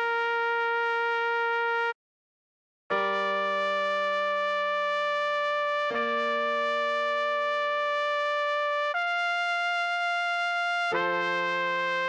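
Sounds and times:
synthesized trumpet long note: 0:00.0 - 0:01.9, 0:03.0 - 0:12.0.

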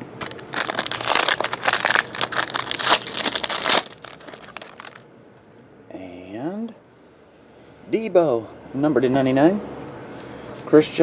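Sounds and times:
foil wrapper crinkling: 0:00.2 - 0:05.0.

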